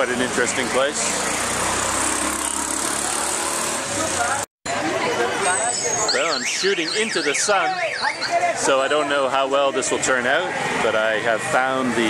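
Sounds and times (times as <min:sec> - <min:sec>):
motor traffic: 0:00.0 - 0:12.0
passers-by talking: 0:02.8 - 0:12.0.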